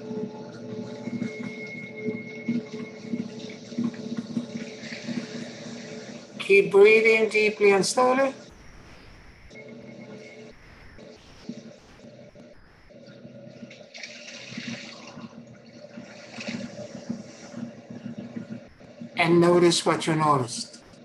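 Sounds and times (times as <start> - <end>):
soft meditation music: 0.0 - 8.5.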